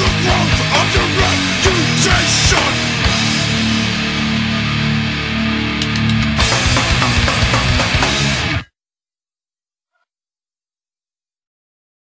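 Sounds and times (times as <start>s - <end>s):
drum kit: 0.0s - 4.6s, 5.6s - 8.7s
distorted electric guitar: 0.0s - 8.7s
quick stick ticks: 5.8s - 6.3s.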